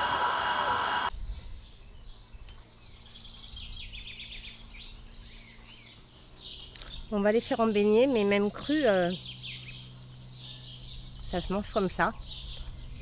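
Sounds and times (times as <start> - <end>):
songbirds chirping: 1.5 - 13.0.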